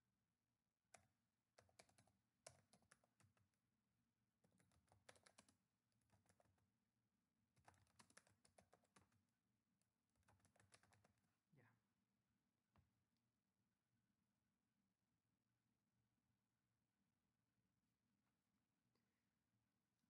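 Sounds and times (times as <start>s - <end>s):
faint typing on keyboard: 0.8s - 3.6s, 4.4s - 6.8s, 7.5s - 9.4s, 10.1s - 11.4s.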